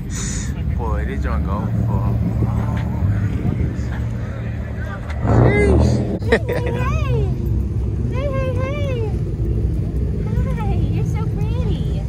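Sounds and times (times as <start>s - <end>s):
car engines idling: 0.0s - 12.0s
people talking: 0.1s - 7.4s, 8.1s - 9.4s, 10.0s - 12.0s.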